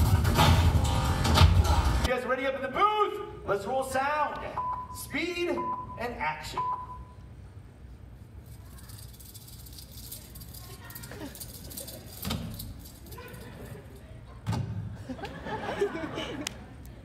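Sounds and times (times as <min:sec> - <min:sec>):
rattling and jangling clatter: 0:08.4 - 0:14.2.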